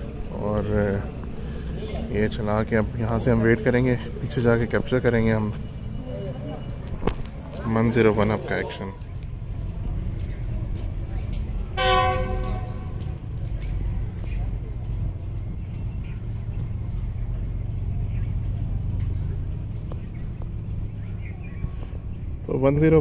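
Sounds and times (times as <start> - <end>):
train low rumble: 0.0 - 23.0
locomotive horn: 11.7 - 13.2.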